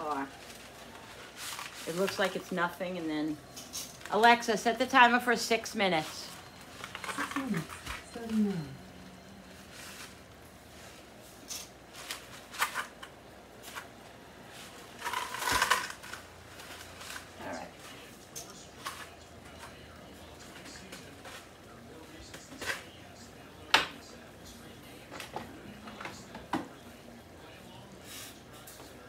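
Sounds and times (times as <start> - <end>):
dry pasta crackling and snapping: 15.0 - 19.8.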